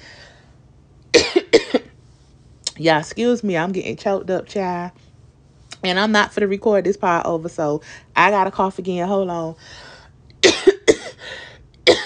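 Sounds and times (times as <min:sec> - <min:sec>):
woman coughing: 0:01.1 - 0:01.9, 0:10.4 - 0:12.0.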